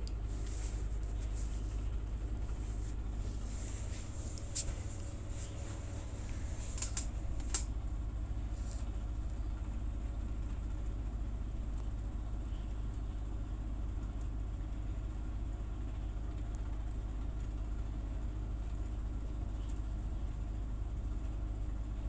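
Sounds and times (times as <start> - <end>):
low rumble with hiss: 0.0 - 22.0
faint clicks: 4.3 - 7.7.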